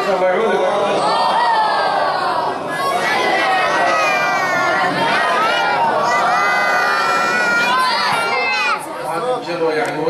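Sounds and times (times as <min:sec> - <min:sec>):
men and children chanting: 0:01.0 - 0:08.2.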